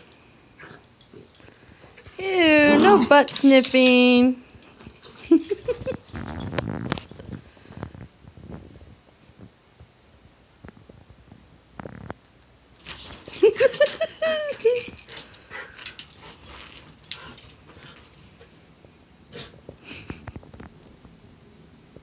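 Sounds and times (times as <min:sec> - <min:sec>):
scuffling and paw claws clicking: 0:00.0 - 0:07.9, 0:12.8 - 0:18.6
puppy yelping and whining: 0:02.5 - 0:03.1.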